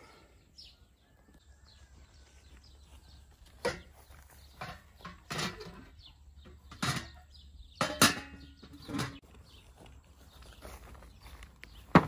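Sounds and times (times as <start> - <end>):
metal clanks and knocks: 3.6 - 9.2.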